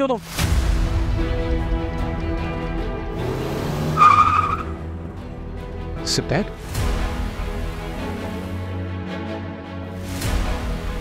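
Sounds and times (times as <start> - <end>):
background music: 0.0 - 11.0
car tyres squealing: 3.8 - 4.9.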